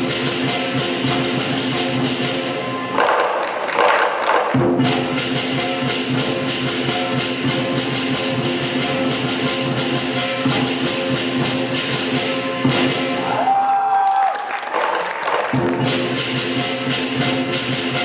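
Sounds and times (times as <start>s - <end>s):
cymbals crashing: 0.0s - 13.7s, 14.8s - 18.0s
drum rhythm: 0.0s - 18.0s.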